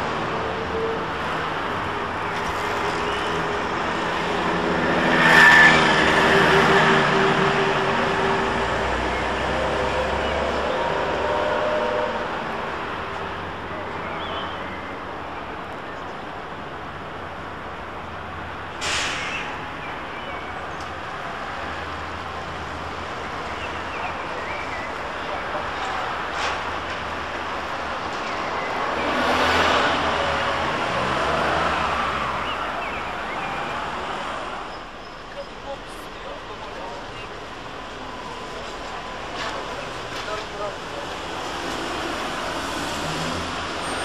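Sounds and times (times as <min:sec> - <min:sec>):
passing vehicles: 0:00.0 - 0:44.0
street traffic hum: 0:00.0 - 0:44.0
air brake hiss: 0:18.8 - 0:19.5.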